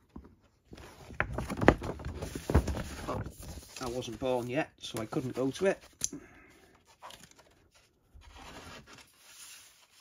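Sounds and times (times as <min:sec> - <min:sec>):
paper and card rustling: 0:00.7 - 0:06.0, 0:06.7 - 0:10.0.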